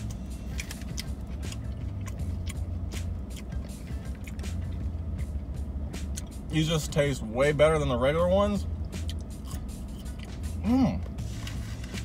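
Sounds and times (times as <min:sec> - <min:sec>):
crisp chewing crunches: 0:00.0 - 0:04.8
steady low hum: 0:00.0 - 0:12.0.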